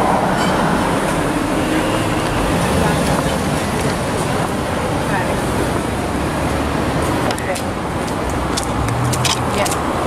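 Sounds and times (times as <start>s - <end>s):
road traffic noise: 0.0s - 10.0s.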